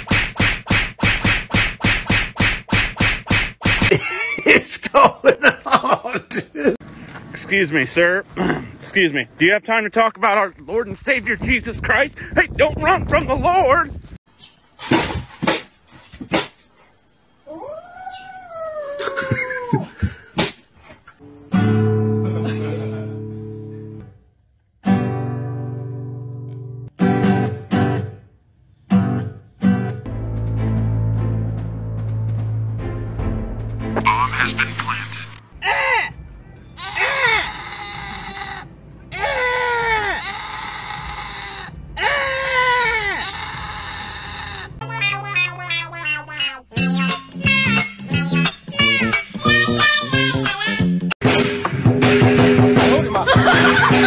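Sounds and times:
kitten meowing: 0:44.8 - 0:46.7
goat bleating: 0:44.8 - 0:46.8.

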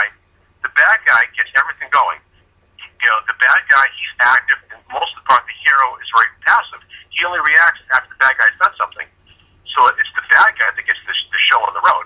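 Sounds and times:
man talking over telephone: 0:00.0 - 0:12.0.

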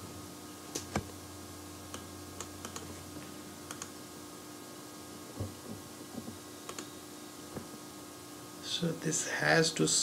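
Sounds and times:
low electrical hum: 0:00.0 - 0:10.0
soft low knocks: 0:05.3 - 0:06.4.

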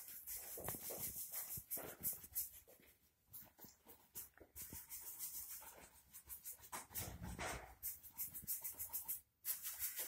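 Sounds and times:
paintbrush scrubbing on wall: 0:00.0 - 0:10.0.

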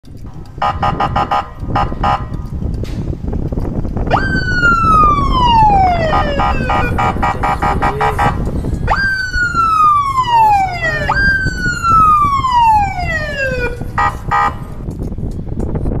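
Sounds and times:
low rumble: 0:00.0 - 0:16.0
siren wailing: 0:04.1 - 0:14.6
siren yelp: 0:04.1 - 0:14.6.

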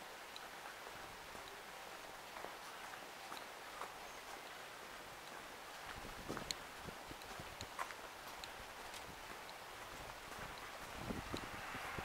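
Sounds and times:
hard shoes on pavement: 0:05.3 - 0:11.7.

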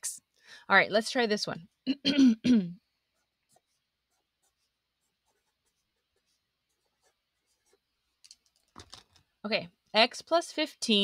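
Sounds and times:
woman clearing her throat: 0:01.9 - 0:02.8.

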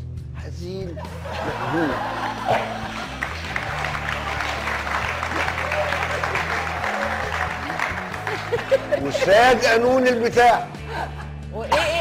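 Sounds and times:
background music: 0:00.0 - 0:12.0
audience applauding: 0:01.3 - 0:09.6.

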